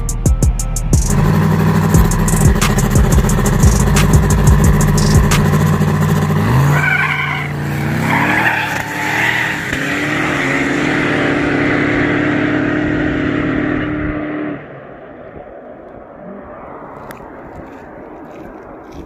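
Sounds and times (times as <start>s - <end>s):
race car engines revving: 1.0s - 17.4s
exhaust crackles: 1.0s - 19.0s.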